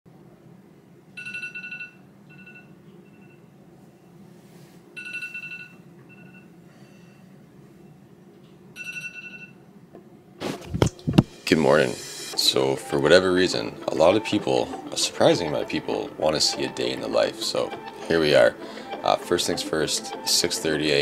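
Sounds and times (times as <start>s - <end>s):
smartphone alarm ringing: 1.2s - 3.4s, 5.0s - 6.5s, 8.8s - 9.6s.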